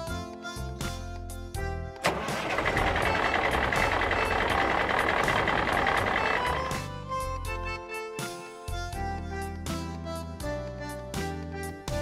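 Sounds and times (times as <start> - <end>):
background music: 0.0 - 12.0
truck rumble: 2.0 - 7.1.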